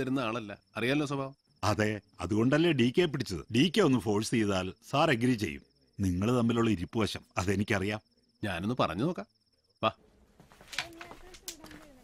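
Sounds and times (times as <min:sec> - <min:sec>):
man speaking: 0:00.0 - 0:10.0
cricket chirring: 0:00.0 - 0:12.0.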